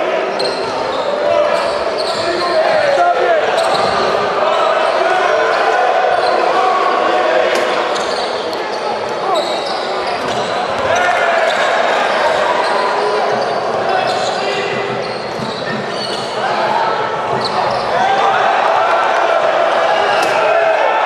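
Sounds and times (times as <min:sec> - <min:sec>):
crowd chatter and shouting: 0:00.0 - 0:21.0.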